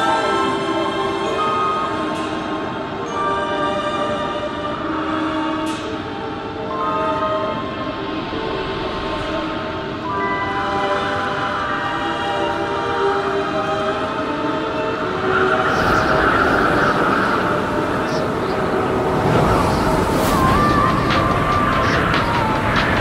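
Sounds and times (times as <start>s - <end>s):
rushing noise: 14.5s - 23.0s.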